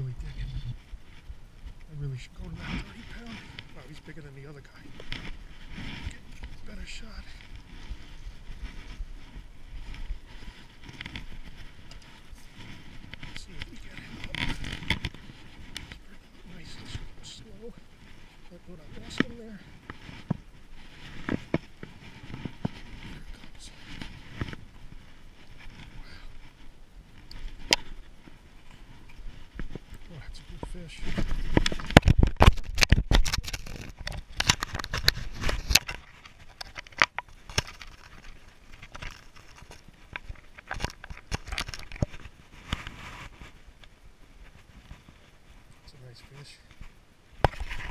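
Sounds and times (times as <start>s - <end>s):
hands and clothing rubbing camera: 0.0s - 43.8s, 44.4s - 47.9s.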